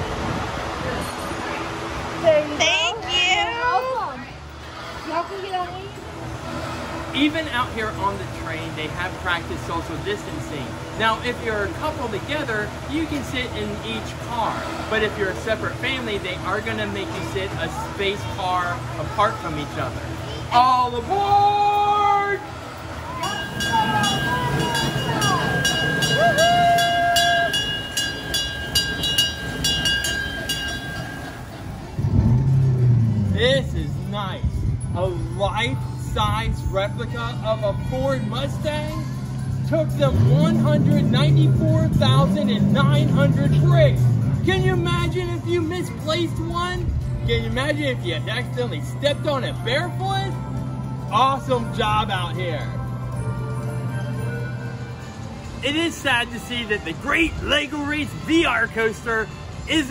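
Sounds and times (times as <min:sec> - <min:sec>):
ride train pulling away: 0:03.6 - 0:59.9
voices calling out: 0:17.2 - 0:32.2
small bell ringing: 0:23.2 - 0:31.6.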